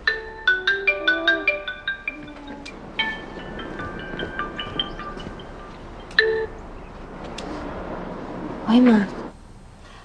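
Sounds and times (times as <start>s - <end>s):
phone ringtone melody: 0.0s - 6.5s.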